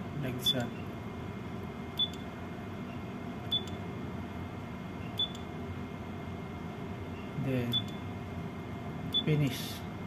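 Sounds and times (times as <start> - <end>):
steady low hum: 0.0 - 10.0
short high beeps with clicks: 5.2 - 5.4.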